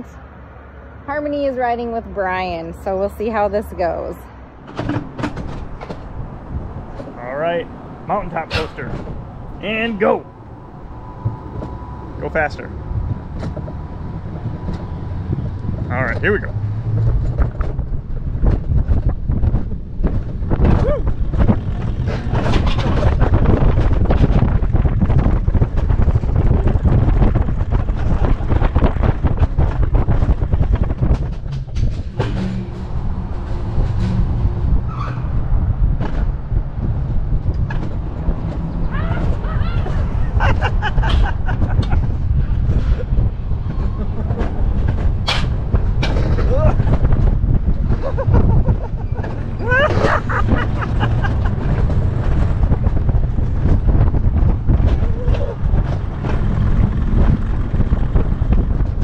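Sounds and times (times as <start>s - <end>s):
sled wheels rumbling on rails: 0.9s - 59.0s
clattering knocks: 4.6s - 7.2s
person speaking: 9.6s - 10.3s.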